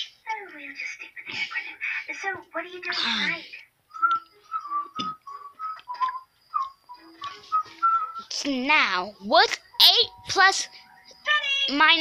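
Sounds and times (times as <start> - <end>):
person whistling short notes: 3.9 - 8.3.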